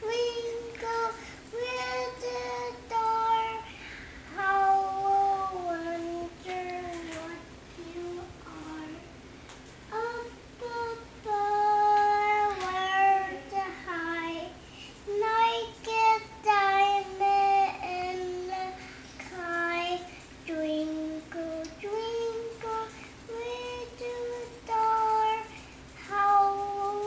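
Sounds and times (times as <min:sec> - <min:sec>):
girl singing unaccompanied: 0:00.0 - 0:09.2, 0:09.8 - 0:27.0.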